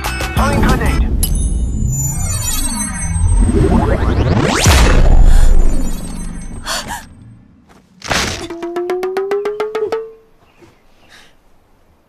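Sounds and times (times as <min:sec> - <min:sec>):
rising tone: 0:01.1 - 0:07.6.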